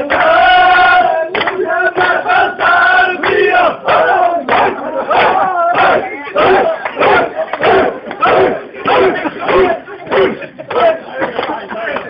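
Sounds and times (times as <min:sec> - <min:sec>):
crowd chanting: 0:00.0 - 0:12.0.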